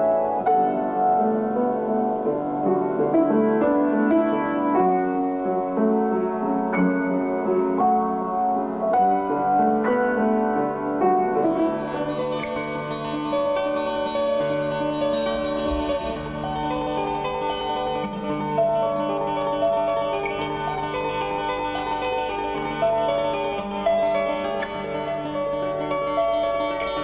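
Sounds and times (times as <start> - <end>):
fingerpicked acoustic guitar: 0.0 - 27.0
piano: 0.0 - 27.0.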